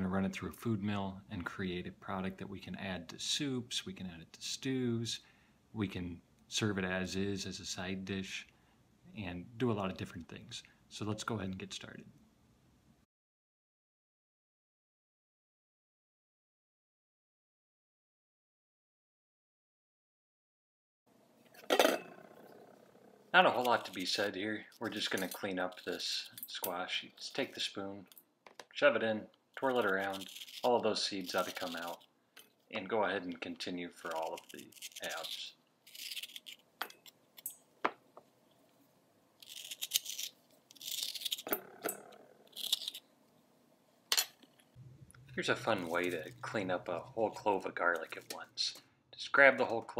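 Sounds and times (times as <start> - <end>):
metal spoon scraping squash: 23.4 - 27.6, 29.6 - 32.1, 34.0 - 37.5, 39.4 - 43.0, 45.3 - 48.4.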